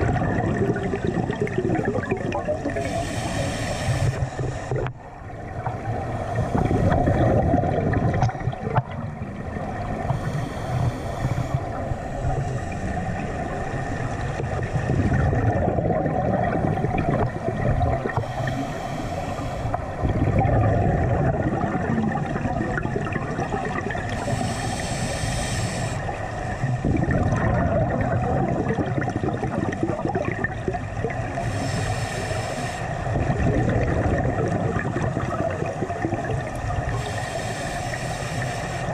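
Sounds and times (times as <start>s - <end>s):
hissing bubbles from diver: 0.0s - 5.0s, 5.9s - 9.0s, 14.2s - 38.9s
muffled underwater rumble: 0.0s - 38.9s.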